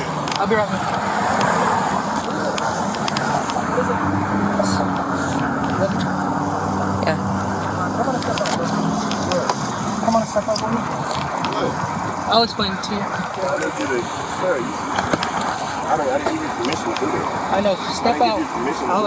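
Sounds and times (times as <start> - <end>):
road traffic with car engines: 0.0 - 19.0.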